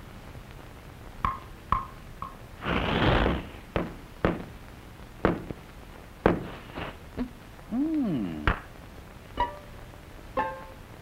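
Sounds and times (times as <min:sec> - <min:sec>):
hissing whoosh: 0:02.6 - 0:03.7
sharp knocks: 0:03.8 - 0:04.5.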